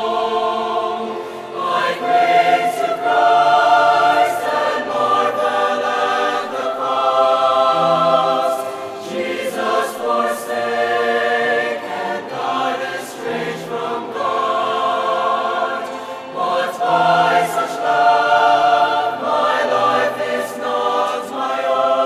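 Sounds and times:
mixed choir singing in harmony: 0.0 - 22.0.

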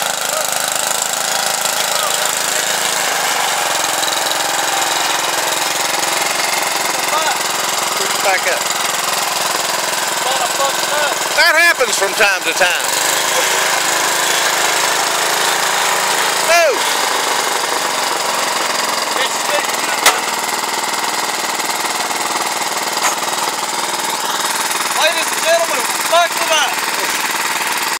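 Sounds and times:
single-cylinder tractor engine running: 0.0 - 28.0.

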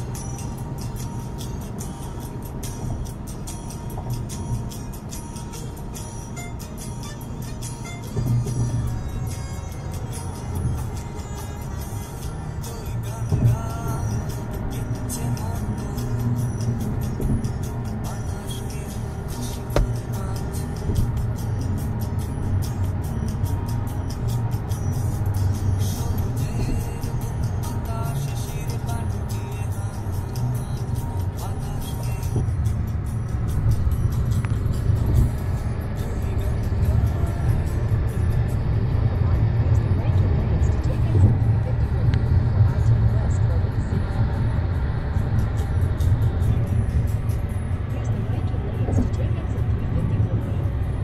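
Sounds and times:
car cabin road and engine rumble: 0.0 - 51.0.

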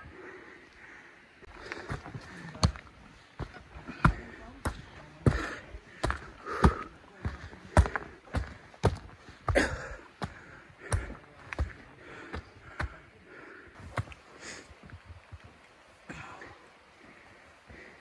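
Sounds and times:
person breathing: 0.0 - 3.2, 5.2 - 14.8, 16.1 - 18.0
footsteps on forest trail: 0.0 - 18.0.

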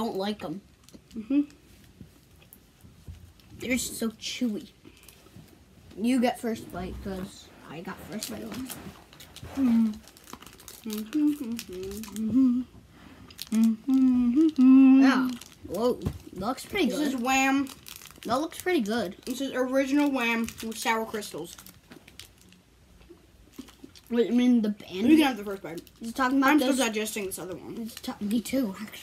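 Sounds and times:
person humming: 1.2 - 1.6, 10.8 - 12.8, 13.5 - 15.0
candy wrapper crinkling: 8.0 - 12.4, 13.3 - 22.7, 23.4 - 24.2, 24.9 - 29.0.

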